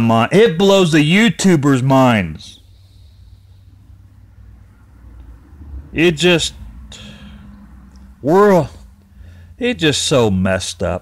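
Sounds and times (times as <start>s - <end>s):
man talking: 0.0s - 2.6s, 6.0s - 7.1s, 8.2s - 8.8s, 9.6s - 11.0s
low background rumble: 0.8s - 11.0s.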